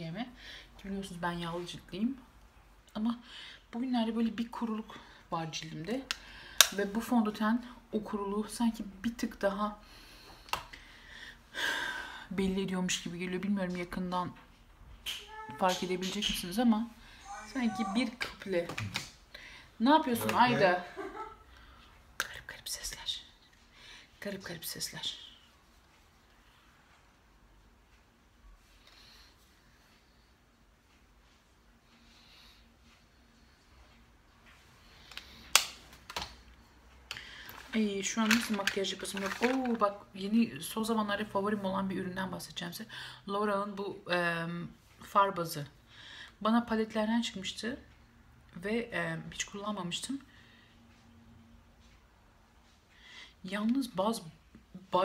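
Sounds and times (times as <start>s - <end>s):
makeup items clicking on table: 38.2s - 39.9s.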